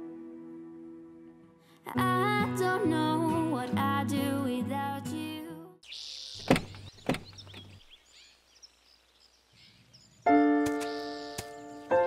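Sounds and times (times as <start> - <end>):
background music: 0.0 - 5.5
birds chirping: 5.8 - 12.0
car door latch thunks: 6.4 - 7.7.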